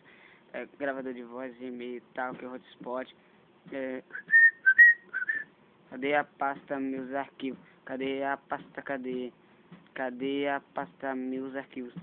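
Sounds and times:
person whistling high notes: 4.1 - 5.5.

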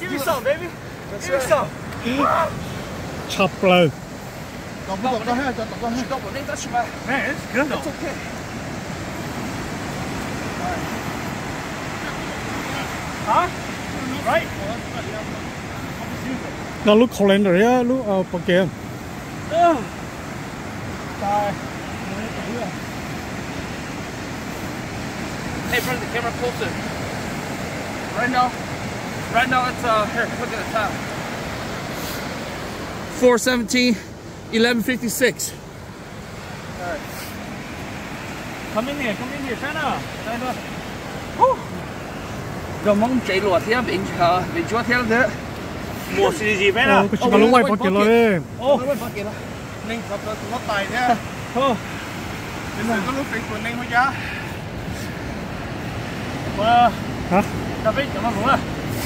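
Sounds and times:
people talking and calling out: 0.0 - 59.0
steady rushing noise: 0.0 - 59.0.

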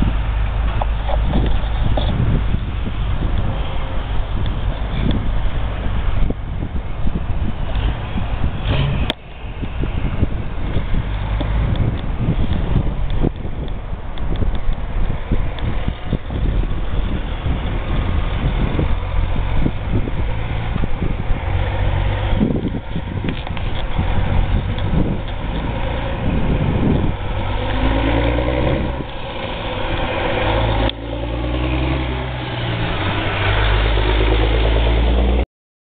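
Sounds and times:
diesel truck engine accelerating: 0.0 - 35.4
heavy low rumble: 0.0 - 35.4.

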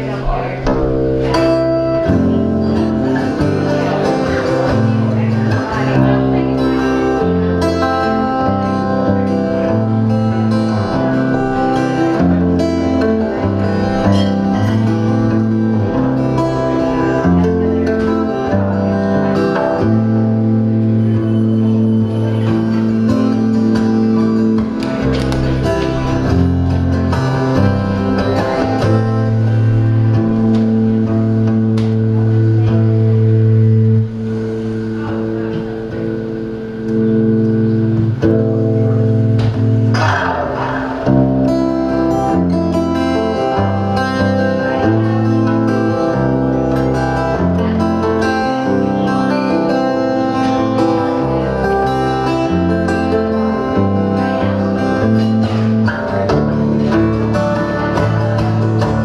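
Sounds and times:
acoustic guitar chords: 0.0 - 59.0.

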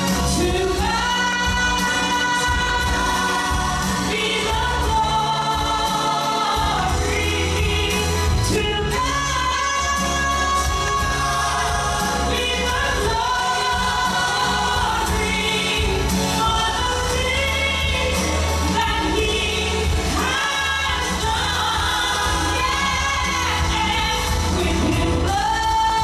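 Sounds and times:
band accompaniment with bass line: 0.0 - 26.0
woman singing gospel: 0.0 - 26.0.

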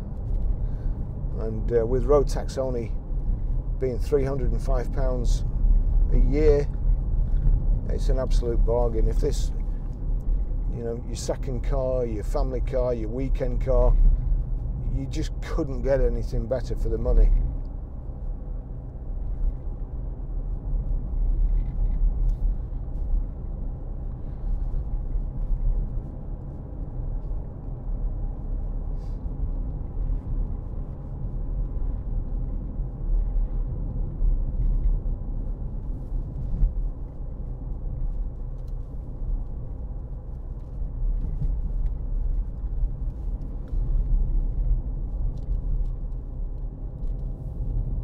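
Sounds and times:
engine and road noise rumble: 0.0 - 48.0.

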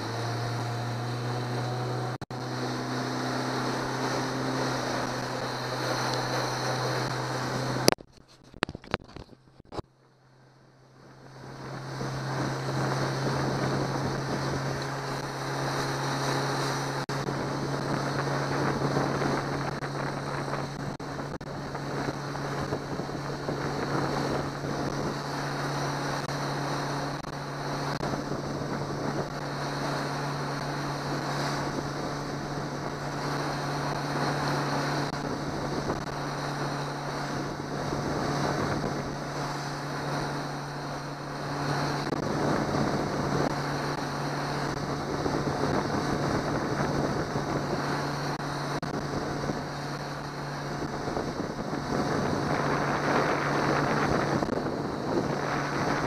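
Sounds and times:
wind buffeting microphone: 0.0 - 9.8, 11.0 - 56.0
outboard motor running: 0.0 - 56.0
water rushing past hull: 0.0 - 56.0.

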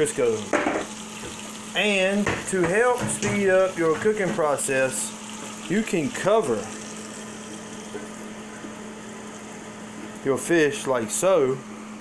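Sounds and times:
muffled grease sizzling: 0.0 - 10.6.

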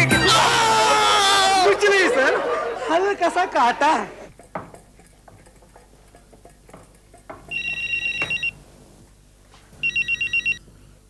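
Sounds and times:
telephone ringing with warbling trill: 7.5 - 8.7, 9.8 - 10.6.

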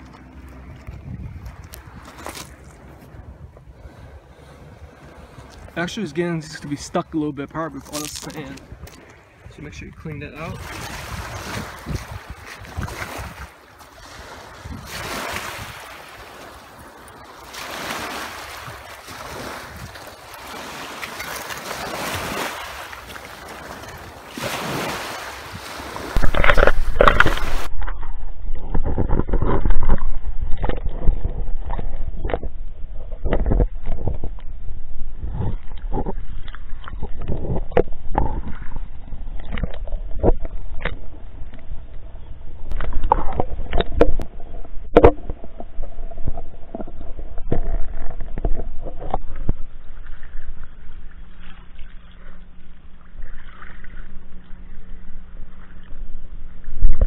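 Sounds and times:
underwater rumble of moving water: 0.0 - 57.0
wind: 0.0 - 57.0
waves washing onto pebbles: 10.4 - 27.7
underwater clicks and knocks: 26.2 - 34.5, 35.3 - 38.7, 39.3 - 41.7, 42.7 - 50.2.

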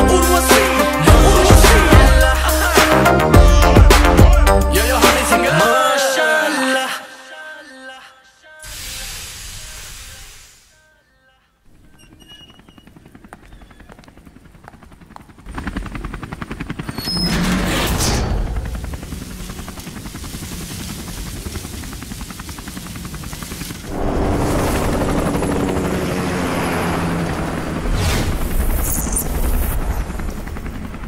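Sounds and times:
fluttering machine pulse: 15.5 - 31.0
rushing sweep: 23.7 - 29.0
low rumble: 23.9 - 28.8.

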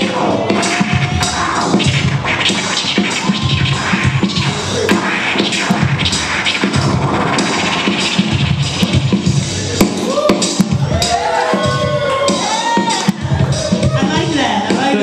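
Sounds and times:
record scratching: 0.0 - 10.6
hip-hop beat: 0.0 - 15.0.

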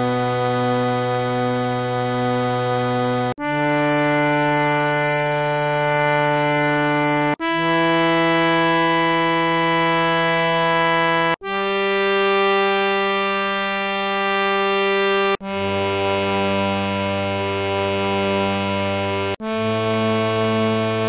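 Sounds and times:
harmonium sustained notes: 0.0 - 21.0.

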